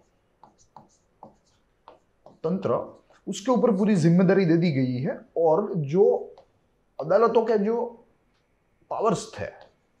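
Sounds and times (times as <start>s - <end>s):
stylus scratching on screen: 0.0s - 4.0s.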